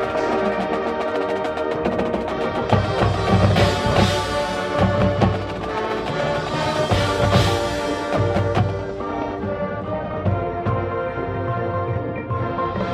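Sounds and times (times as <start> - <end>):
brass and woodwinds chords: 0.0 - 12.9.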